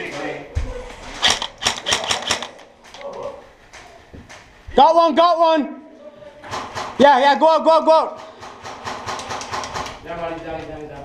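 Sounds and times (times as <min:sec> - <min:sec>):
paintball markers firing: 0:01.2 - 0:02.7, 0:08.3 - 0:10.1.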